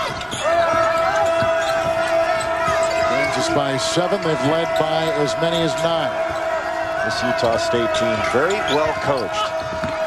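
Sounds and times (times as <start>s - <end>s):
basketball bouncing on hardwood: 9.6s - 10.0s.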